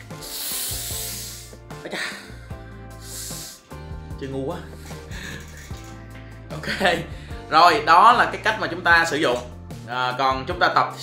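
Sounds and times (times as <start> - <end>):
man blowing out breaths: 0.0 - 3.8
background music: 0.0 - 11.0.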